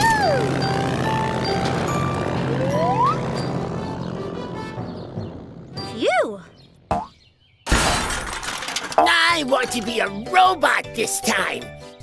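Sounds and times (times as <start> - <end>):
cartoon crash smash: 7.7 - 8.6.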